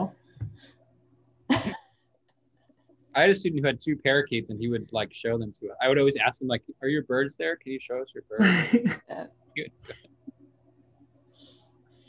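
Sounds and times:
person coughing: 1.5s - 1.8s.

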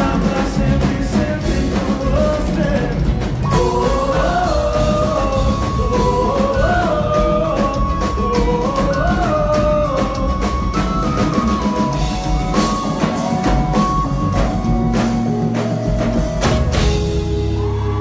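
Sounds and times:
live band music through pa: 0.0s - 18.0s.

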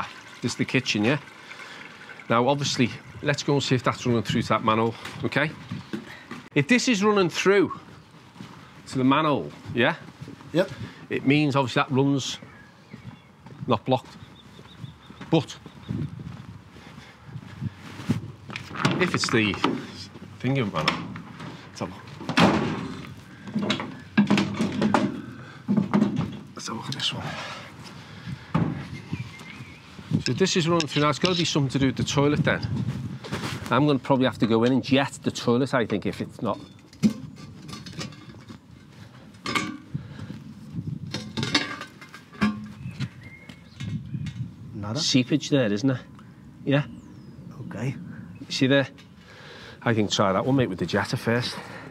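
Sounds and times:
footsteps on paved path: 4.0s - 22.3s, 27.1s - 34.2s, 41.8s - 44.6s
metallic clinks and scrapes: 30.2s - 31.8s, 36.5s - 39.8s.

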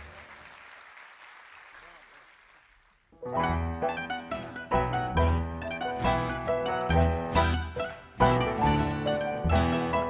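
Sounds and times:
faint audience applause: 0.0s - 3.2s.

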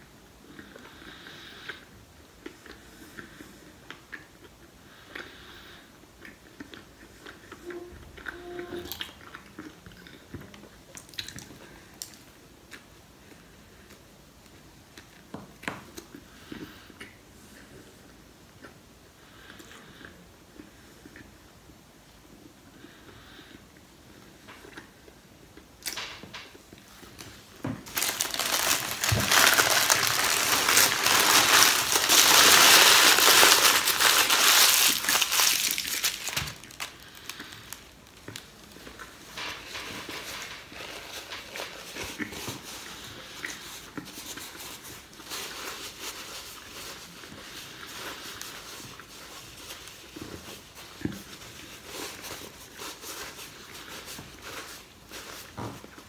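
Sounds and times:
wrapper crinkling: 27.1s - 42.8s.

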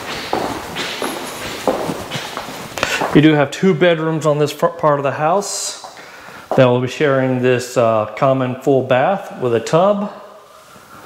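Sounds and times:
footsteps on hard floor: 0.0s - 3.3s, 5.7s - 6.8s.

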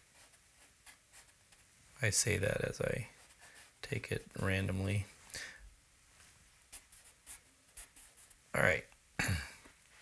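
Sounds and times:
charcoal scratching on paper: 0.0s - 1.7s, 3.1s - 3.8s, 6.7s - 8.4s.

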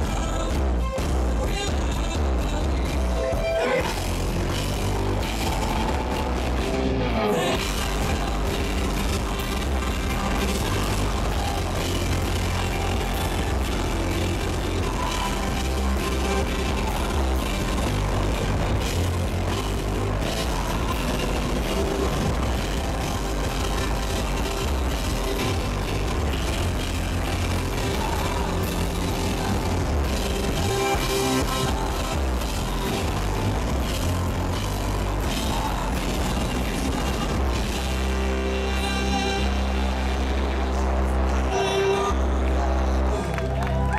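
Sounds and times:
live rock band playing: 0.0s - 43.7s
deep bass drone: 0.0s - 43.9s.

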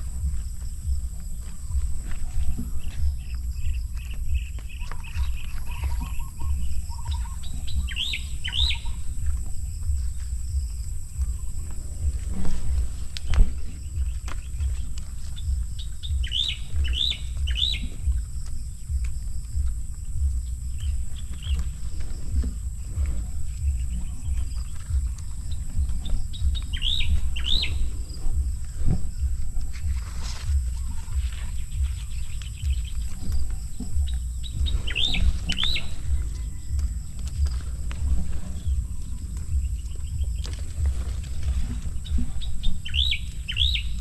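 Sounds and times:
low rumble: 0.0s - 44.0s
small bird chirping: 0.0s - 44.0s.

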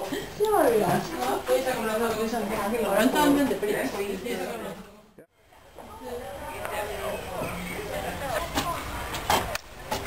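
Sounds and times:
outdoor background noise: 0.0s - 10.0s
voices talking: 0.0s - 10.0s.

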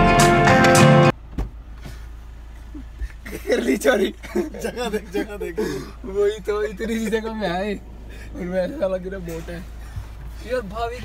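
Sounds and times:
music playing in car: 0.0s - 1.2s
car engine idling: 0.0s - 11.0s.

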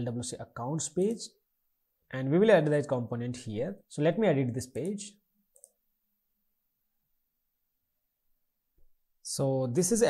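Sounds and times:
computer mouse click: 4.8s - 5.8s.

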